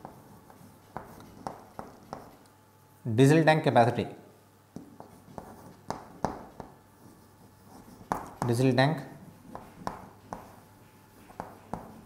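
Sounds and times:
chalk tapping on a chalkboard: 0.0 - 2.4, 4.8 - 8.7, 9.4 - 12.0.

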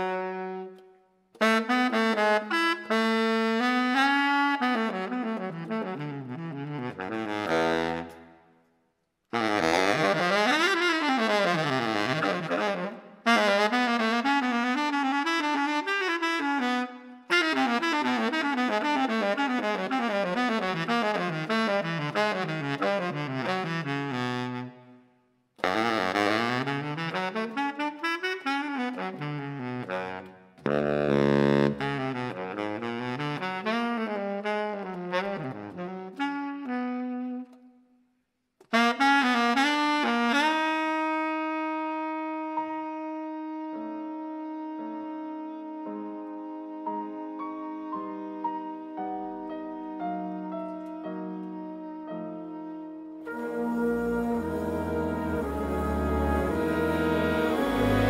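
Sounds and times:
baritone saxophone playing: 0.0 - 0.8, 1.4 - 8.3, 9.3 - 24.8, 25.6 - 37.6, 38.7 - 58.0
jazz big band ballad: 50.3 - 58.0.

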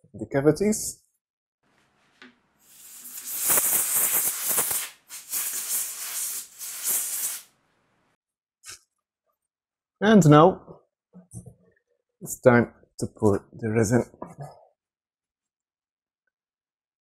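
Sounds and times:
compressed air blow gun hissing: 2.6 - 7.5.

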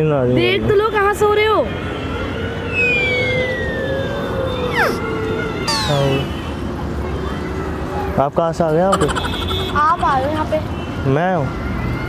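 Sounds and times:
meow-like call: 4.7 - 5.0
quick downward sweep: 4.7 - 5.1, 5.7 - 6.3.

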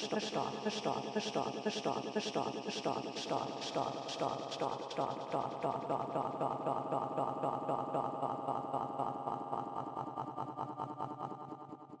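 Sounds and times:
stuttering looped voice sample: 0.0 - 11.6.

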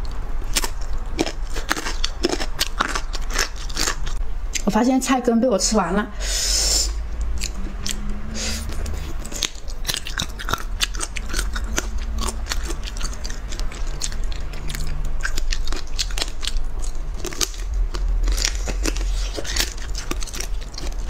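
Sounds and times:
person chewing crunchy food: 0.0 - 4.6, 7.1 - 21.0.

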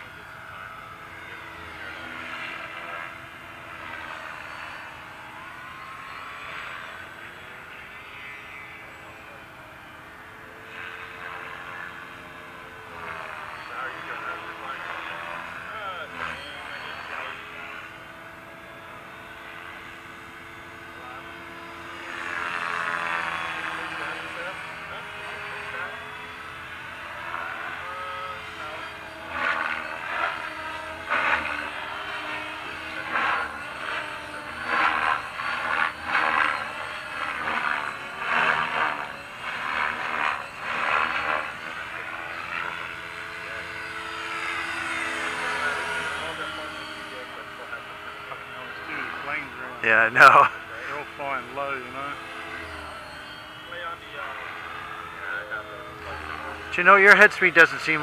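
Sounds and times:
rc helicopter motor whine: 0.0 - 58.0.

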